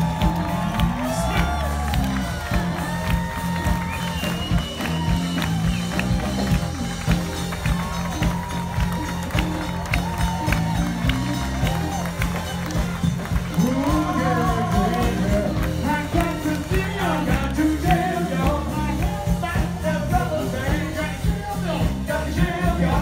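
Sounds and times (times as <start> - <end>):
live soul band playing: 0.0 - 23.0.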